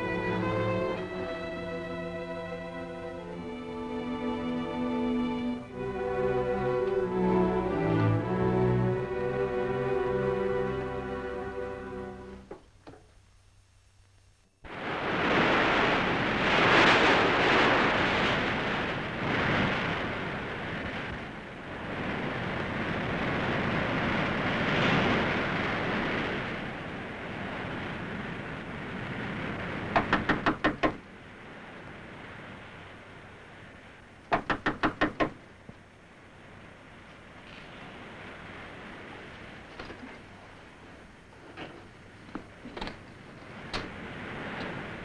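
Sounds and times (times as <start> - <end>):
surf washing in: 14.7 - 45.0
knocking on a door: 30.0 - 31.0, 34.3 - 35.4.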